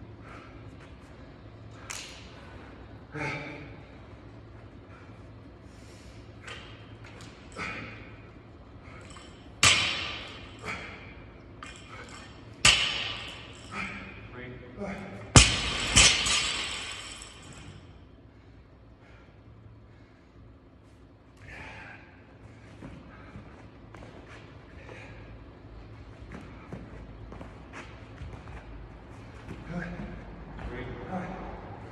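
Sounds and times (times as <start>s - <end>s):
bar and plates rattling: 9.0s - 14.2s, 15.3s - 17.8s
barbell hitting rubber floor: 9.6s - 10.8s, 12.6s - 13.6s, 15.3s - 17.6s.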